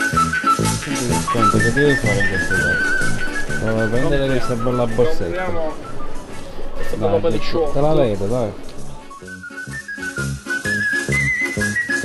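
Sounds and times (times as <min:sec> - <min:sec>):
bouncy bass beat: 0:00.0 - 0:05.4
whistled tune: 0:00.0 - 0:12.0.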